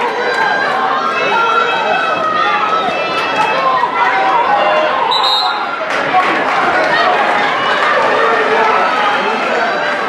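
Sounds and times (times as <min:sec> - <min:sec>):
crowd yelling and shouting: 0:00.0 - 0:10.0.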